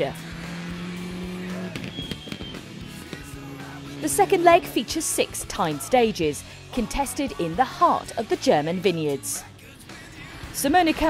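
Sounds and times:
rally car engine at speed: 0:00.0 - 0:11.0.

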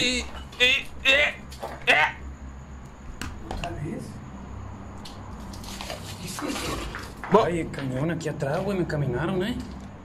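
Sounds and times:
steady low hum: 0:00.0 - 0:06.5.

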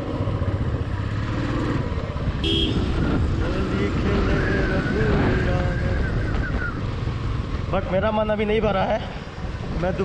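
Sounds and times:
motorcycle engine running: 0:00.0 - 0:08.8
wind noise on microphone: 0:02.2 - 0:07.7.

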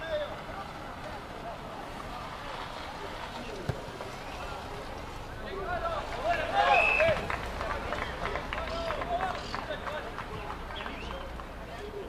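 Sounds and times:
voices shouting: 0:00.0 - 0:11.4.

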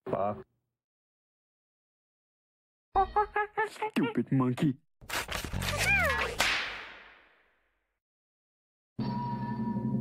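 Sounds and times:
whip-like crack with ringing tail: 0:06.4 - 0:07.3.

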